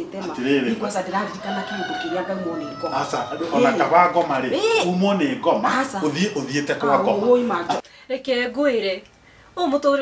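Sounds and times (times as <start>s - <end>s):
rooster crowing: 0.4s - 4.4s.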